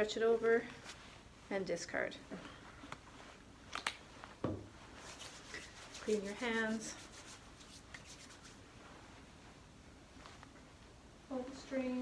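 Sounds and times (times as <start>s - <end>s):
gown rustling: 0.0s - 12.0s.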